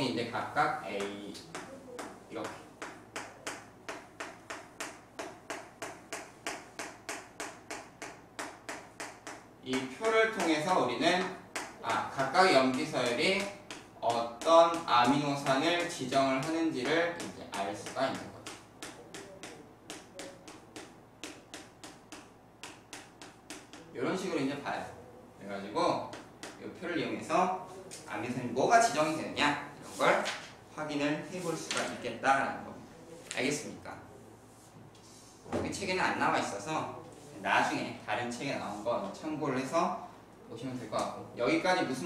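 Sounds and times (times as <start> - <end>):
chalk tapping on a chalkboard: 0.9 - 24.3, 26.0 - 26.7.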